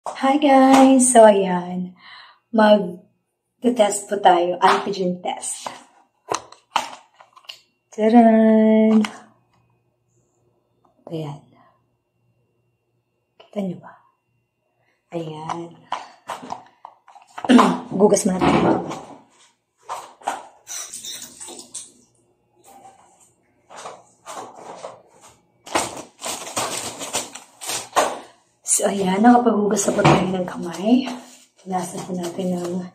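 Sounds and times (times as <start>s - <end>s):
hands washing with water: 20.6s - 22.1s.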